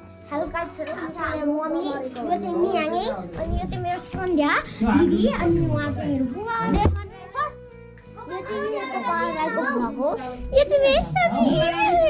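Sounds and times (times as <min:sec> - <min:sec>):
background music: 0:00.0 - 0:12.0
children chattering and calling: 0:00.3 - 0:12.0.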